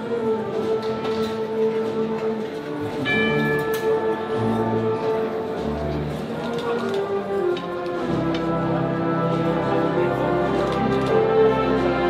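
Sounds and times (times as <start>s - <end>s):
wind band playing a march: 0.0s - 12.0s.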